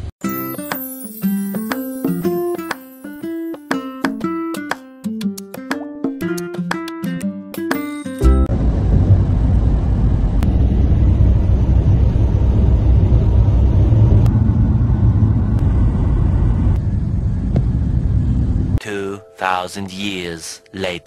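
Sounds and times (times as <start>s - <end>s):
vehicle road noise rumble: 8.4s - 18.8s.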